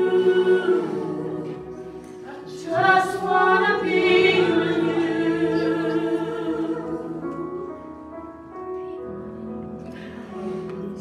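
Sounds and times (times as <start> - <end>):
group singing worship music: 0.0 - 8.0
musical accompaniment: 0.0 - 11.0.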